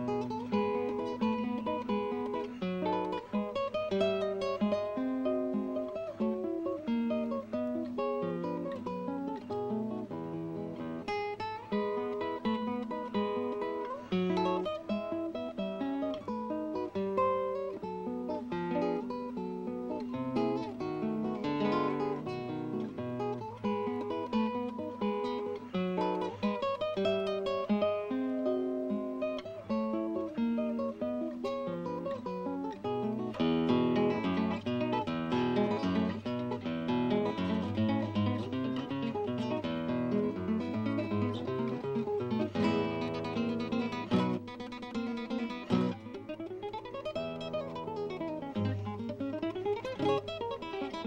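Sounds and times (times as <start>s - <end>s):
fingerpicked classical guitar: 0.0s - 51.0s.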